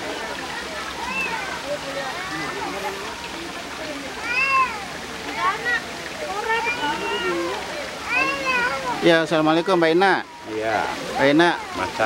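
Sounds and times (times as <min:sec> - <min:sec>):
water flowing among rocks: 0:00.0 - 0:12.0.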